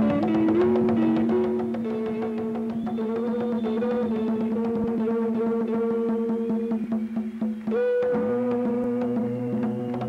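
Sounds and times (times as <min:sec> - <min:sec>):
acoustic band music: 0:00.0 - 0:10.0
conga strikes: 0:00.0 - 0:10.0.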